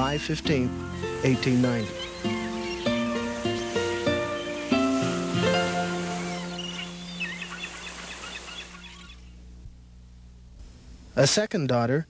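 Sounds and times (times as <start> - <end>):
soft background music: 0.0 - 9.0
small birds chirping: 0.0 - 9.6.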